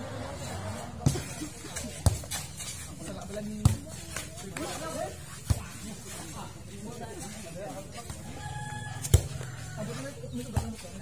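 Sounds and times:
low voices: 0:00.0 - 0:11.0
rooster crowing: 0:08.3 - 0:10.2.

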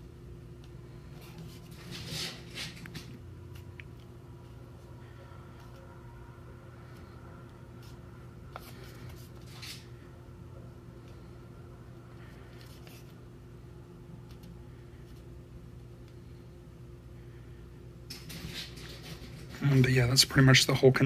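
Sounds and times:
low hum: 0:00.0 - 0:21.0.

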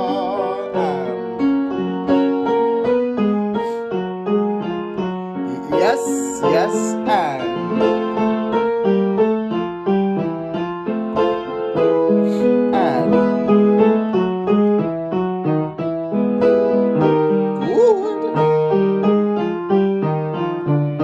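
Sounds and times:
keyboard piano notes and chords: 0:00.0 - 0:21.0.

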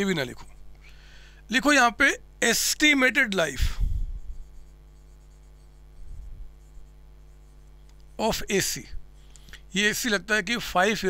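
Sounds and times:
steady low hum: 0:00.0 - 0:11.0
marker pen writing on whiteboard: 0:04.2 - 0:08.4.

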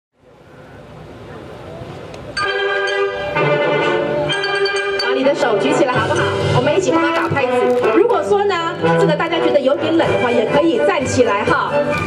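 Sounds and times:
faint noise: 0:00.2 - 0:02.4.

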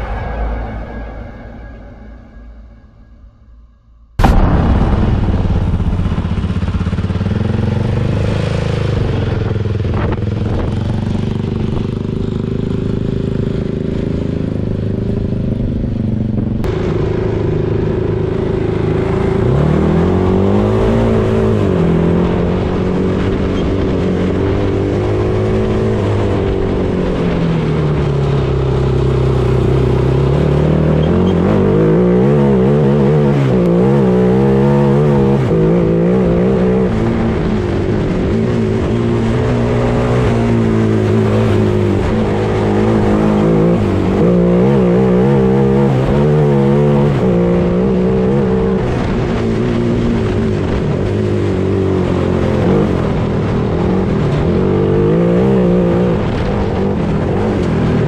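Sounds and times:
wind and road noise: 0:00.0 - 0:03.4, 0:04.1 - 0:58.0
buggy engine idling and revving: 0:05.4 - 0:58.0.

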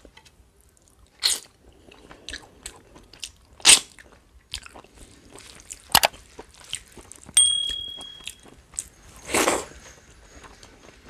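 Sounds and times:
crunchy chewing of fried fish: 0:00.7 - 0:07.4, 0:08.4 - 0:11.0.

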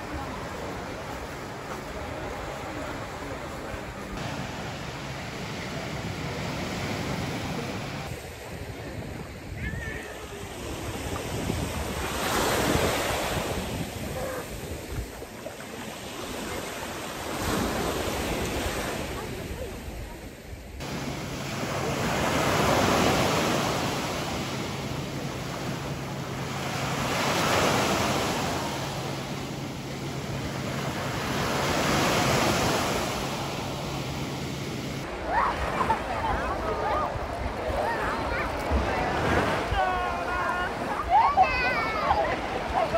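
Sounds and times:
sea waves breaking on beach: 0:00.0 - 0:42.9.

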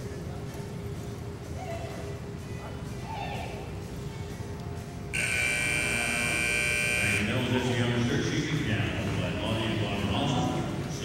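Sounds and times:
loud electronic buzzer tone: 0:05.2 - 0:07.4.

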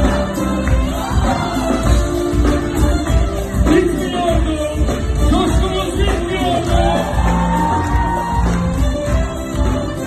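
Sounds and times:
live pop music over pa: 0:00.0 - 0:10.0
crowd shouting and whooping: 0:06.6 - 0:09.2.

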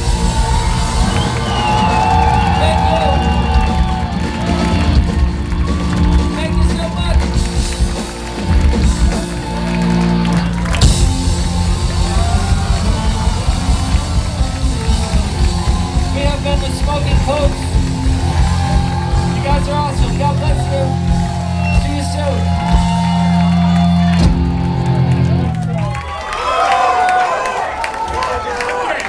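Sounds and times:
live rock band playing loud: 0:00.0 - 0:26.0.

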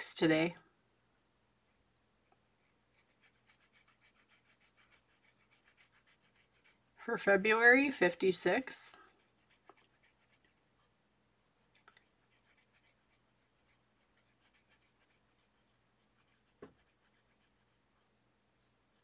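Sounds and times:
marker scratching on paper: 0:02.6 - 0:06.9, 0:07.9 - 0:10.9, 0:11.8 - 0:19.0.

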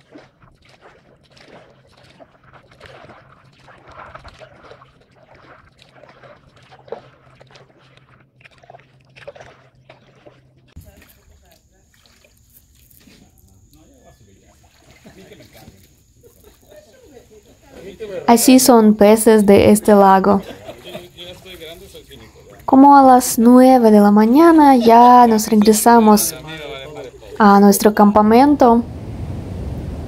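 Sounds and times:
paddle sloshing in water: 0:00.0 - 0:18.3, 0:19.9 - 0:23.6
low steady hum: 0:06.4 - 0:30.0.

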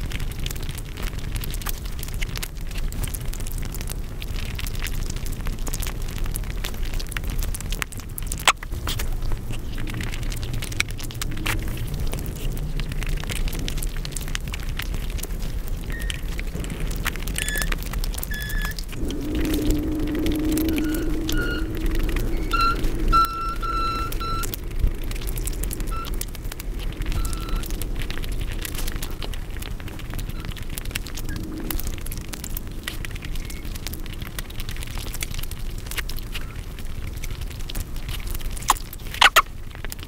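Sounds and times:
low hum: 0:16.0 - 0:29.7
short squeaky tones: 0:17.4 - 0:18.8, 0:20.7 - 0:24.5, 0:39.2 - 0:39.4
wet chewing and mouth smacking: 0:37.7 - 0:39.5.

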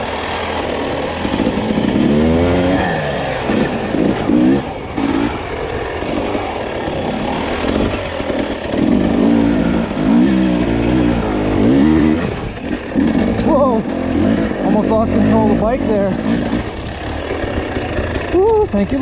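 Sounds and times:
dirt bike engine revving: 0:00.0 - 0:19.0.

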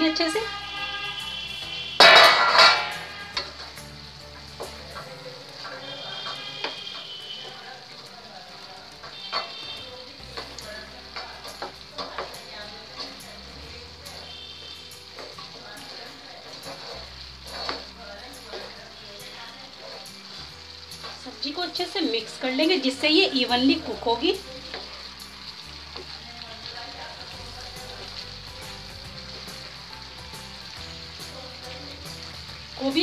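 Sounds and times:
vegetables sizzling in a frying pan: 0:00.0 - 0:33.0
metal lid clattering: 0:02.0 - 0:03.0
spatula scraping a pan: 0:02.0 - 0:03.8, 0:09.0 - 0:09.8, 0:10.4 - 0:13.2, 0:14.1 - 0:19.0, 0:19.6 - 0:21.2.

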